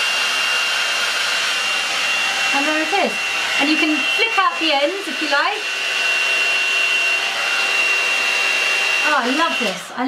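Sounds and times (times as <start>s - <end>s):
hot air brush fan rushing: 0.0s - 10.0s.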